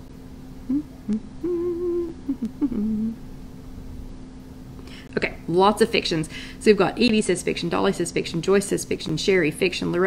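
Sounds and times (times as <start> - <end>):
low electrical hum: 0.0 - 10.0
woman humming: 0.6 - 3.3.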